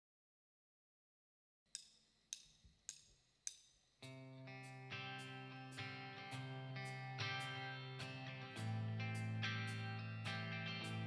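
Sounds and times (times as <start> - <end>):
drumstick count-in ticks: 1.7 - 10.4.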